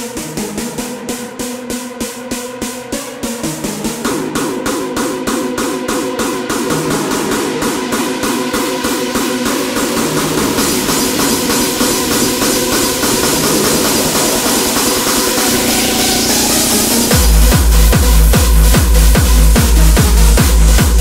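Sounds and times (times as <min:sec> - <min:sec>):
repeating synth riff: 0:00.0 - 0:21.0
rising noise sweep: 0:06.6 - 0:19.0.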